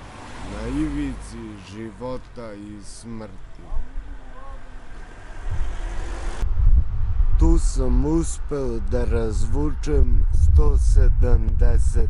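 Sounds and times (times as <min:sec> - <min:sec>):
road traffic rumble: 0:00.0 - 0:12.0
wind buffeting microphone: 0:03.4 - 0:12.0.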